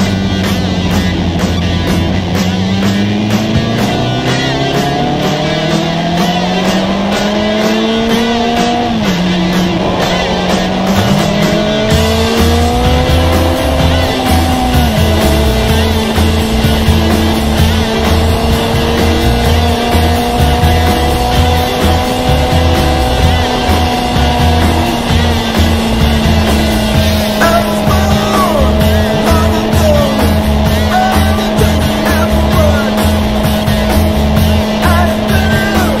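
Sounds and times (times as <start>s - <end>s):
motorcycle engine cruising: 0.0s - 36.0s
road noise: 0.0s - 36.0s
rushing wind: 0.0s - 36.0s.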